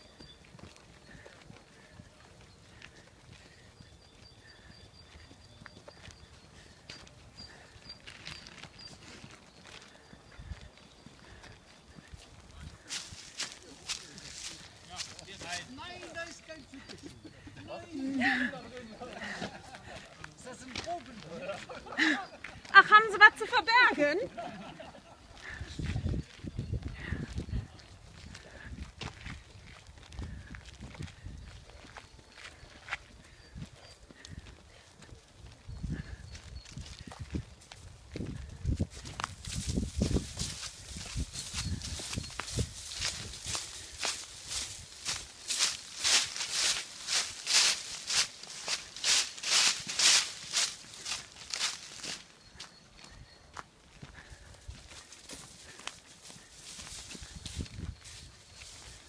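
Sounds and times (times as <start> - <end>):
footsteps walking: 0.0 - 17.3, 18.3 - 23.7, 28.1 - 59.0
dry leaves crunching underfoot: 39.0 - 52.3.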